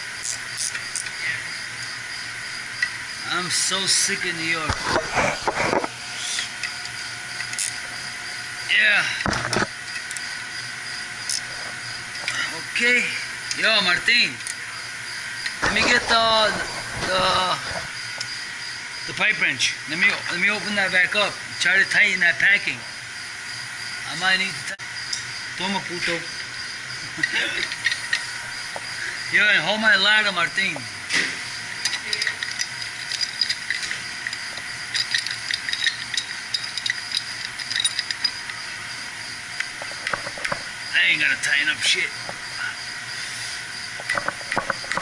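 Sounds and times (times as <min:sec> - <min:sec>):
steady hiss: 0:00.0 - 0:45.0
pipe wrench clicking on metal: 0:31.8 - 0:38.6.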